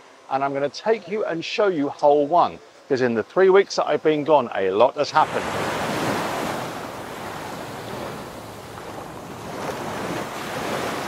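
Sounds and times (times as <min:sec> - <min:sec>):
ocean surf rushing: 0:05.0 - 0:11.0.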